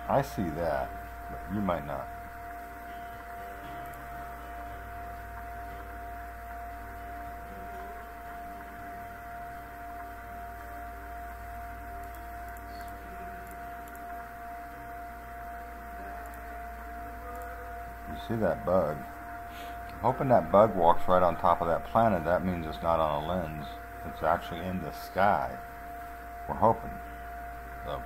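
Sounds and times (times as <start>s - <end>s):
low hum: 0.0s - 28.0s
steady held tone: 0.0s - 28.0s.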